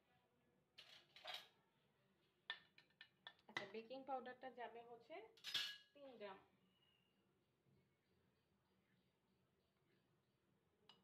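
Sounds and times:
cutlery clinking against dish: 0.8s - 1.5s, 5.4s - 5.9s.

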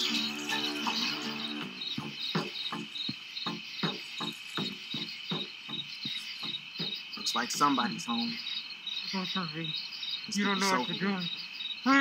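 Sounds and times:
music: 0.0s - 7.0s
cricket trill: 0.0s - 12.0s.

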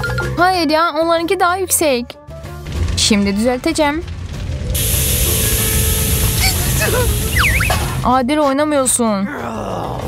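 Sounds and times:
background music: 0.0s - 10.0s
loud spraying hiss: 4.8s - 8.0s.

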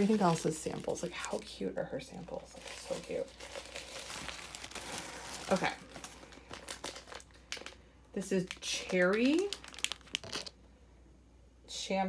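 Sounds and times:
tissue paper crinkling: 0.0s - 1.5s, 2.1s - 10.6s.

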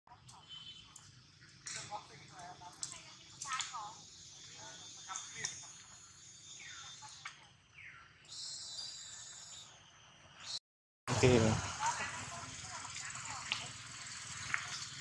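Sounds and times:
falling whistled calls: 2.9s - 10.6s.

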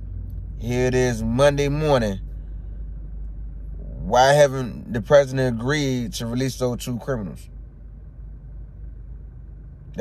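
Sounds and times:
car engine idling: 0.0s - 10.0s.

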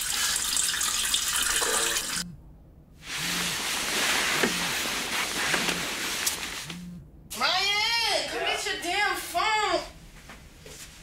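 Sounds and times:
running water: 0.0s - 2.2s
soft low pulse: 2.2s - 3.6s, 6.6s - 7.3s.

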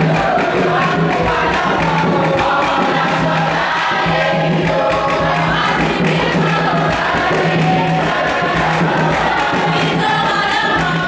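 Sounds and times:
group singing in chorus: 0.0s - 11.0s.

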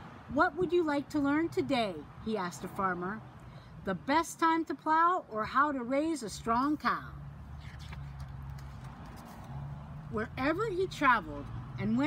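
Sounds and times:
book page turning: 7.6s - 9.8s.

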